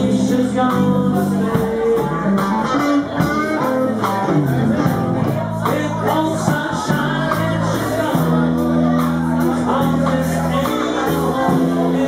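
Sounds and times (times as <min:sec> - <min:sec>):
electric guitar notes: 0:00.0 - 0:09.0
electric bass line: 0:00.0 - 0:12.0
person singing: 0:00.0 - 0:12.0.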